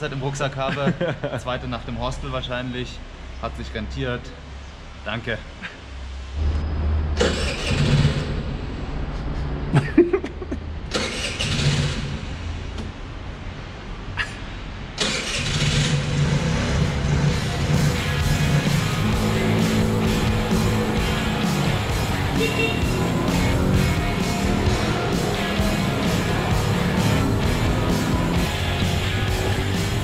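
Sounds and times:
scooter engine revving: 10.9 - 12.3, 15.0 - 30.0
rock music: 17.1 - 30.0.

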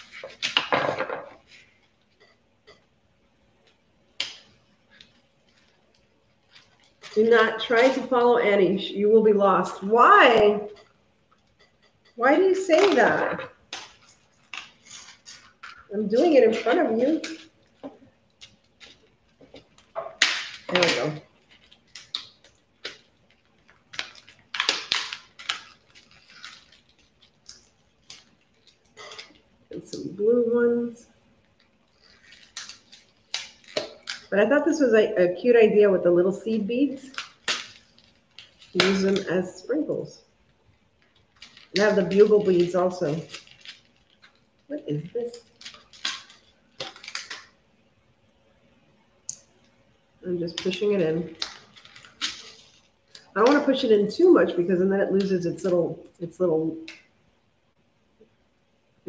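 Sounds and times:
plastic bead packs clicking and crinkling: 3.6 - 8.0, 12.7 - 29.6, 31.4 - 34.4, 36.8 - 39.6, 40.4 - 47.6, 50.4 - 54.0.

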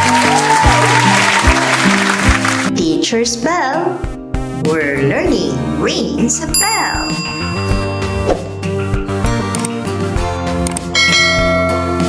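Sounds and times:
background music with steady beat: 0.0 - 12.0
bell ringing: 6.5 - 9.3, 11.0 - 12.0.

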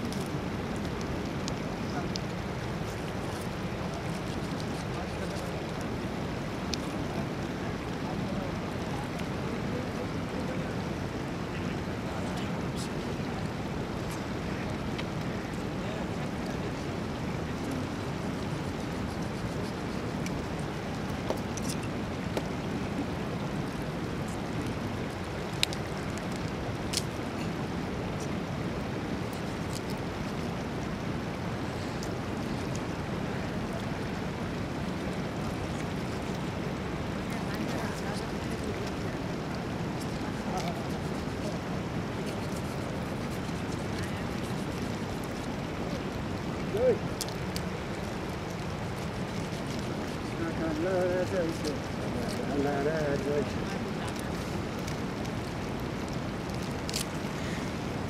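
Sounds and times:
rushing outdoor noise: 0.0 - 58.0.

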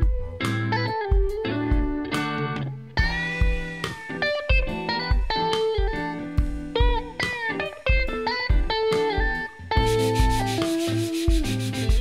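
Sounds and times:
electric guitar music: 0.0 - 12.0
sanding block scratching wood: 9.8 - 12.0.

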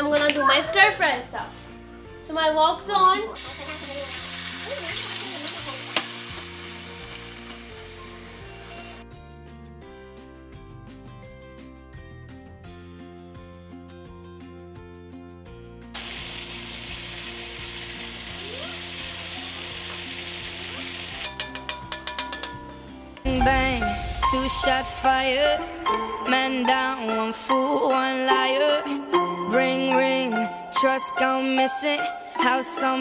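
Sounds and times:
food sizzling in wok: 3.4 - 9.0, 16.0 - 22.5.

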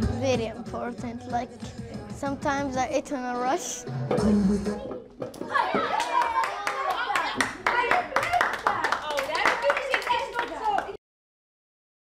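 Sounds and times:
children calling and chattering: 5.3 - 11.0
children clapping: 5.5 - 11.0.

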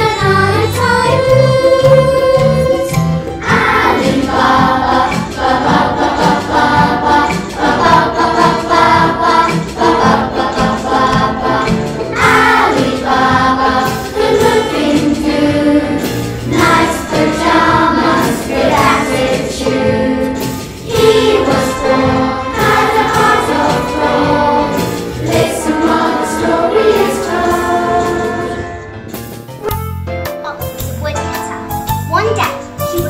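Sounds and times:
children's choir singing: 0.0 - 29.1
instrumental backing track: 0.0 - 33.0.

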